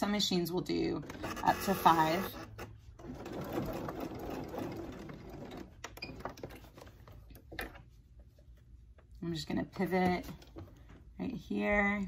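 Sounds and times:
sewing machine stitching: 1.0 - 6.7.

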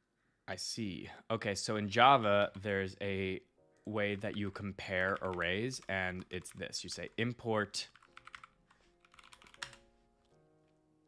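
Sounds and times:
soft background music: 0.5 - 11.0
computer keyboard keystrokes: 4.2 - 7.2, 7.9 - 9.8.

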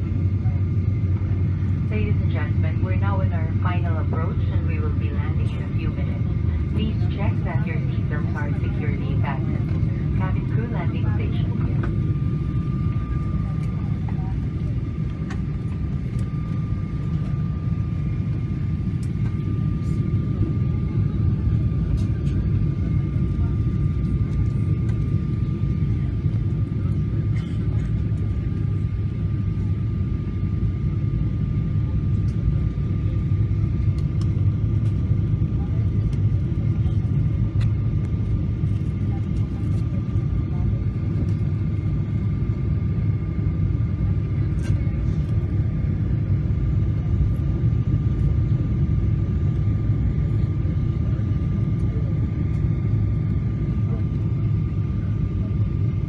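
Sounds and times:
jet engine and airflow rumble: 0.0 - 56.0.

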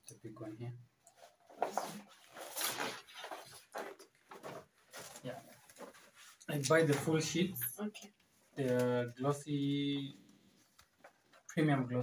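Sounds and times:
glossy paper rustling: 1.2 - 7.6.

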